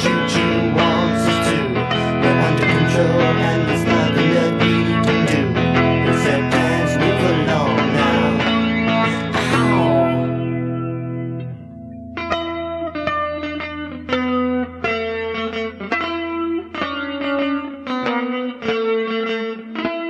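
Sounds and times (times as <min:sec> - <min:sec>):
electric guitar with effects: 0:00.0 - 0:20.0.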